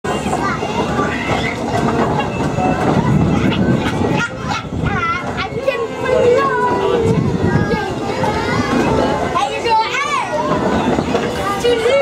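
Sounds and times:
carousel mechanical rumble and clatter: 0.0 - 12.0.

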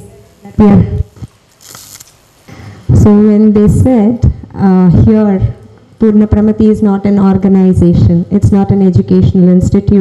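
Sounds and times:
woman speaking into microphone: 0.0 - 1.1, 2.9 - 10.0
breath hiss on microphone: 0.8 - 3.0.

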